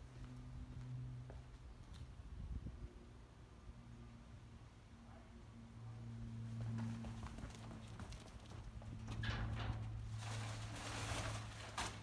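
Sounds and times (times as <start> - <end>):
footsteps on asphalt: 0.0 - 2.1
dumpster lid scraping open: 9.1 - 12.0.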